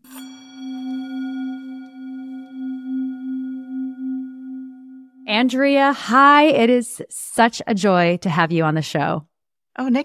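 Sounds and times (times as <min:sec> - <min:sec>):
singing bowl ringing: 0:00.0 - 0:06.5.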